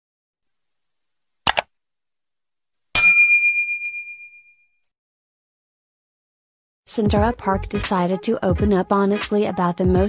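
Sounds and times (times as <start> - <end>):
bright notification bell ding: 3.0 - 4.5.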